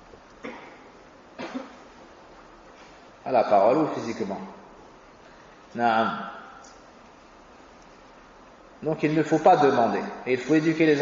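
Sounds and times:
faint steady background hiss: 0.0 - 11.0
man speaking: 3.2 - 4.6, 5.7 - 6.6, 8.8 - 11.0.

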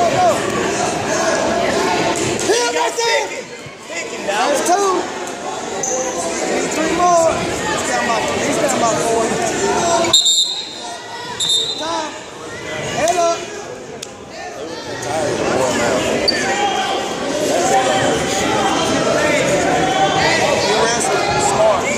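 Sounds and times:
people calling out in gymnasium: 0.0 - 21.9.

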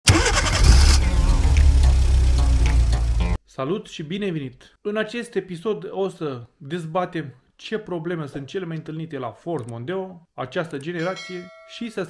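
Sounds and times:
car engine starting and running: 0.0 - 3.4.

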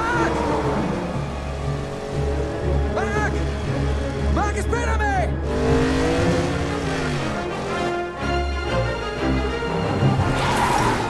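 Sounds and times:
highway traffic rumble: 0.0 - 8.8.

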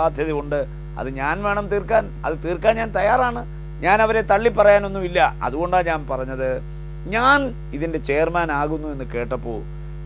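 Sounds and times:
man talking: 0.0 - 9.7
low electrical hum: 0.0 - 10.0.

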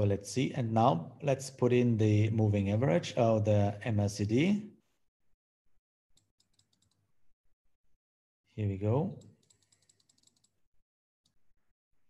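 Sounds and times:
mouse scroll wheel clicking: 6.2 - 7.0, 9.2 - 10.6.

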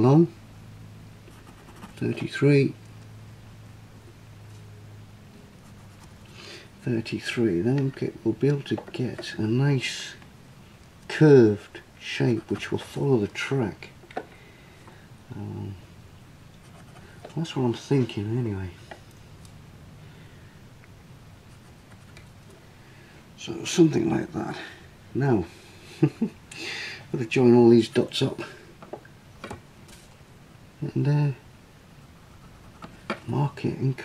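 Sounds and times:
low steady hum: 0.0 - 34.0
pencil scratching on card: 1.3 - 2.2, 16.6 - 17.2, 21.5 - 22.2, 32.0 - 33.0.

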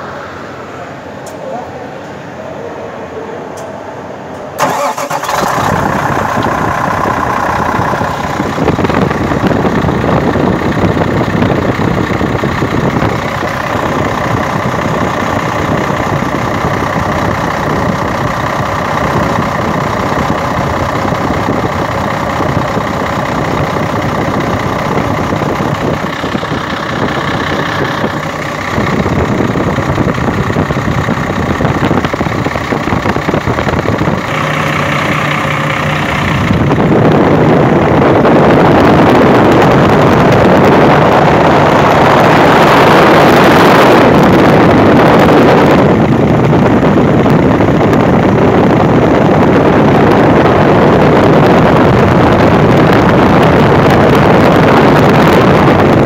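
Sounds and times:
diesel engine starting and idling: 0.0 - 56.0.

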